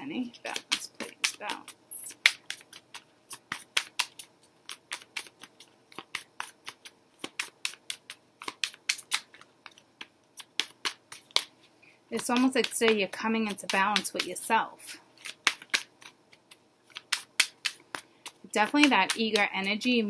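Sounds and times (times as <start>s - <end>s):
cards being shuffled: 0.5s - 20.0s.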